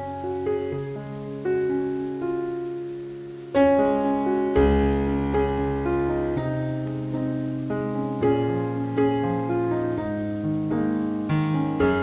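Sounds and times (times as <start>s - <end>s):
slow piano chords: 0.0s - 12.0s.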